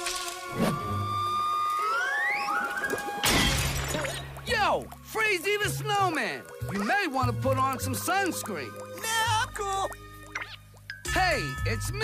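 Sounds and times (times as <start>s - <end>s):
glass shattering crash: 3.2s - 4.3s.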